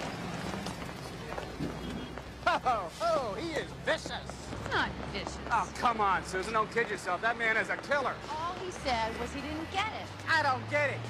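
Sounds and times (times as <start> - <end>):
footsteps on sidewalk: 0.0 - 11.0
low hum of street ambience: 0.0 - 11.0.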